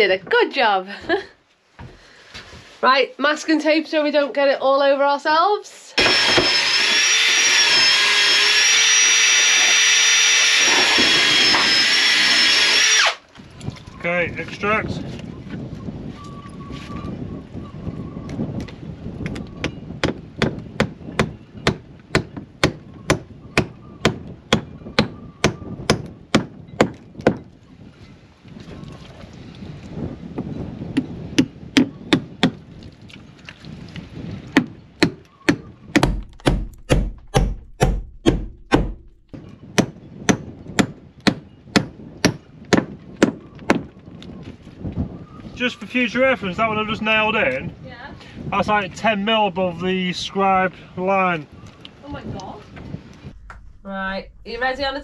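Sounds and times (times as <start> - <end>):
hammer driving nails into wood: 34.6 - 39.2.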